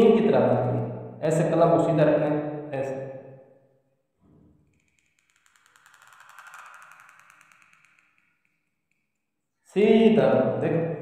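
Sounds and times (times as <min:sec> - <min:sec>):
pen nib scratching paper: 0:04.8 - 0:08.1.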